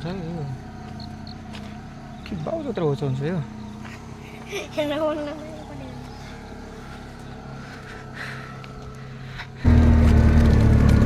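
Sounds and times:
auto-rickshaw engine drone: 0:00.0 - 0:11.0
vehicle engine running quietly: 0:00.0 - 0:11.0.

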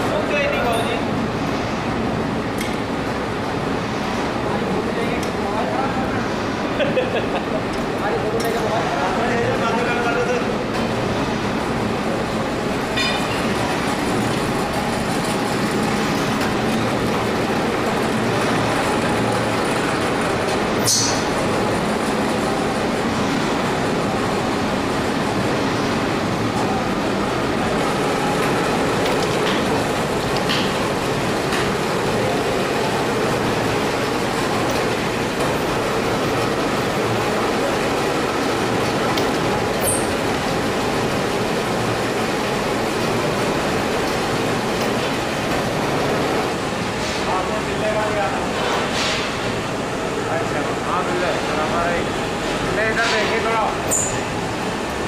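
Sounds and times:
heavy factory machinery running: 0:00.0 - 0:55.0.

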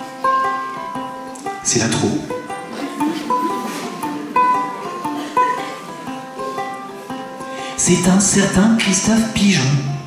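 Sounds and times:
ukulele plucked melody: 0:00.0 - 0:10.0.

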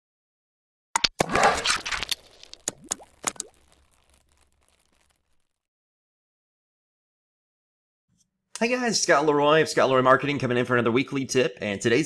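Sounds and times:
quick pops with rising pitch: 0:01.0 - 0:05.5.

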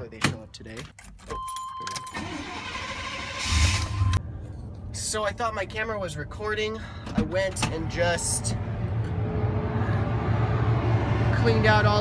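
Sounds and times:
engine starter cranking: 0:02.1 - 0:04.1
truck engine rumbling: 0:02.2 - 0:12.0.

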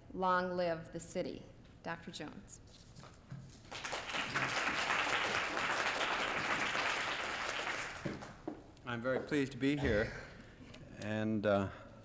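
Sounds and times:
audience applauding: 0:03.7 - 0:08.4.

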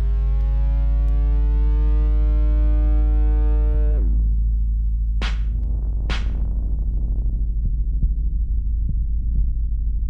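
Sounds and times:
deep bass drone: 0:00.0 - 0:10.0.

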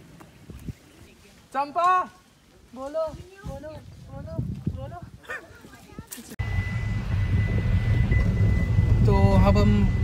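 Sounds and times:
car engine and road noise: 0:06.4 - 0:10.0
high-pitched whine: 0:06.4 - 0:10.0.

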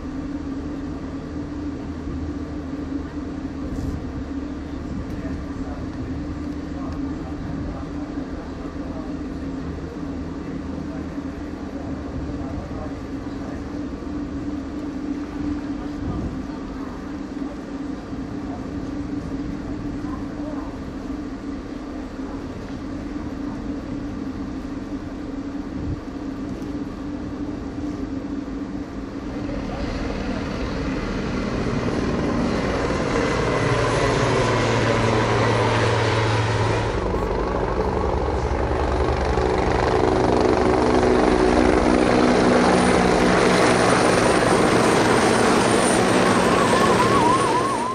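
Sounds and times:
engine noise: 0:00.0 - 0:47.9
faint high whine: 0:00.0 - 0:47.9.

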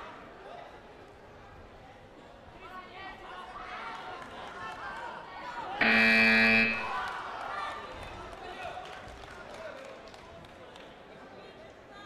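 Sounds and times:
electronic buzzer tone: 0:05.8 - 0:07.0.

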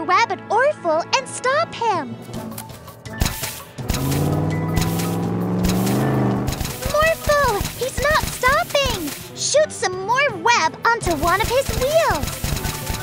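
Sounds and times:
rapid clicking: 0:03.2 - 0:09.3, 0:11.1 - 0:13.0
steady low drone: 0:03.8 - 0:06.8.

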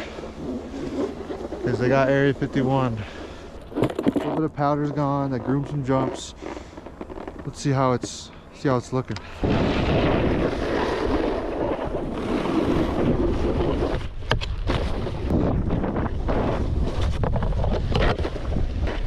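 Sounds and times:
snowboard scraping snow: 0:00.0 - 0:08.2, 0:09.4 - 0:19.0
wind buffeting microphone: 0:09.3 - 0:19.0.

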